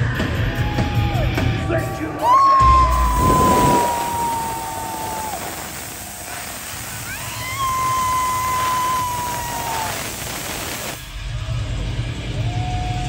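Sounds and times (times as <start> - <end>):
concert crowd noise: 0.0 - 13.0
long high cry: 2.2 - 6.3, 6.9 - 10.6.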